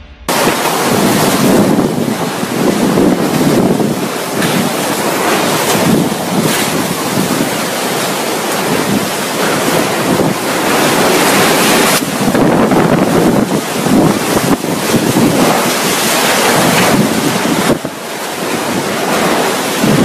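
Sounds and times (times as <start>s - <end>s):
heavy rain: 0.3s - 20.0s
strong wind gusts: 0.3s - 20.0s
wind buffeting microphone: 0.3s - 20.0s.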